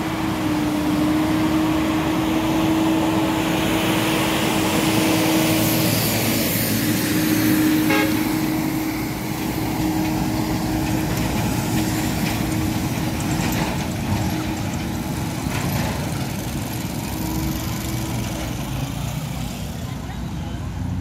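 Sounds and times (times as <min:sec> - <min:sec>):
heavy lorry engine running: 0:00.0 - 0:21.0
horn toot: 0:07.8 - 0:08.5.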